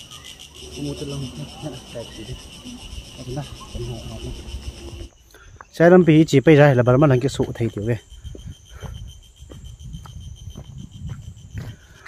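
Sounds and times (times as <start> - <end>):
low voices: 0.0 - 5.1
insects chirping: 0.0 - 12.0.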